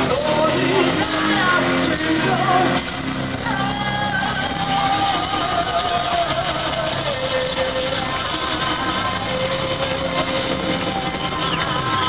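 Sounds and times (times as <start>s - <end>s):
live band through loudspeakers: 0.0s - 12.0s.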